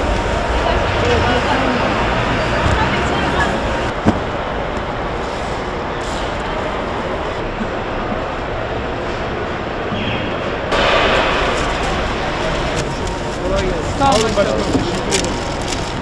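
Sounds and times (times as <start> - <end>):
busy hall hubbub: 0.0 - 16.0.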